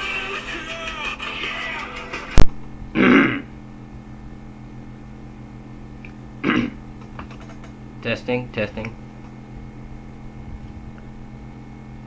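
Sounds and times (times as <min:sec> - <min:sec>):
low hum: 0:01.8 - 0:08.0
person clearing throat: 0:02.9 - 0:03.6, 0:06.4 - 0:06.8.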